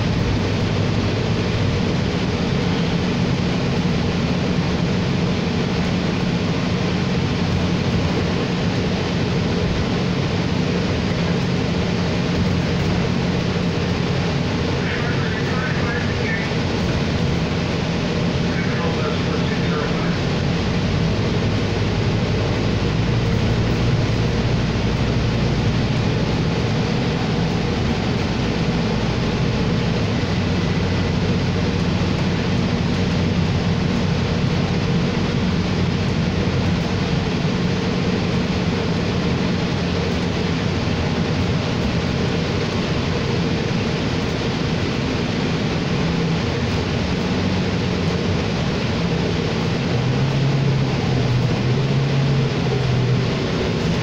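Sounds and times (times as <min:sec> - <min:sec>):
bus engine drone: 0:00.0 - 0:54.0
road noise: 0:00.0 - 0:54.0.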